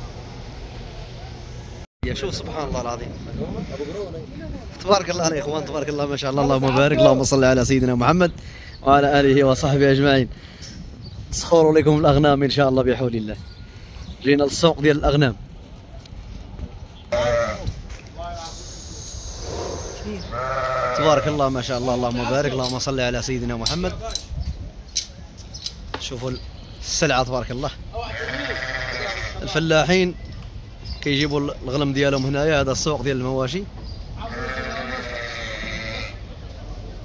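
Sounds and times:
sheep bleating: 0:17.1 - 0:17.7, 0:20.2 - 0:21.5, 0:28.1 - 0:29.5, 0:34.2 - 0:36.2
livestock pen background noise: 0:17.1 - 0:17.8, 0:19.4 - 0:21.6, 0:28.1 - 0:29.6, 0:34.2 - 0:36.3.

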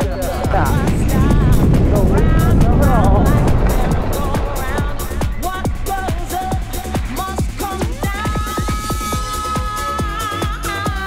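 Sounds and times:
electronic dance music with vocals: 0:00.0 - 0:11.0.

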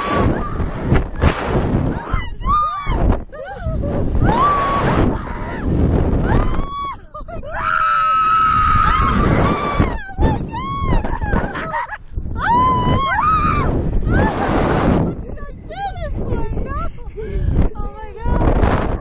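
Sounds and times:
people screaming: 0:00.0 - 0:00.9, 0:04.1 - 0:14.7
people laughing: 0:10.9 - 0:12.1.

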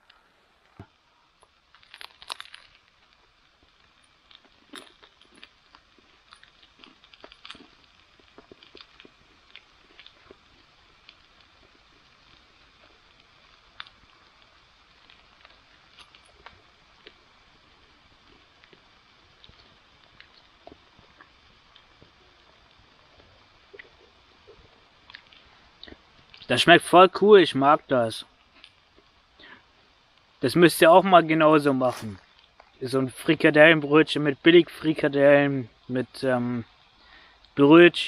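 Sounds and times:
person chewing crusty bread: 0:01.4 - 0:26.5, 0:28.4 - 0:29.8.

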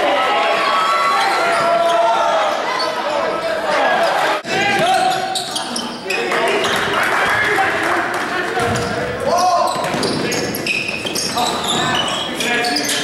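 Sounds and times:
players shouting: 0:00.0 - 0:10.6
basketballs bouncing on gym floor: 0:08.1 - 0:12.4.

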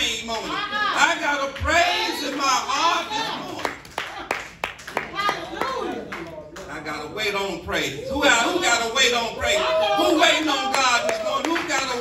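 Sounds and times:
people clapping: 0:01.1 - 0:07.0, 0:10.1 - 0:12.0.

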